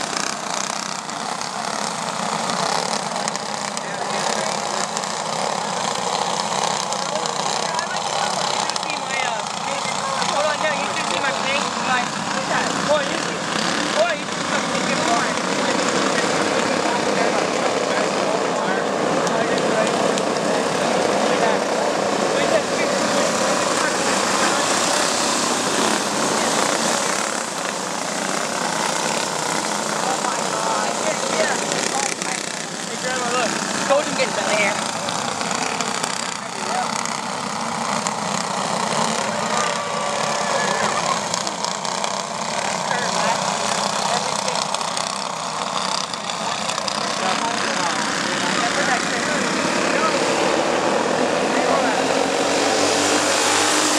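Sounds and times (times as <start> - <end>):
racing kart engines: 0.0 - 53.9.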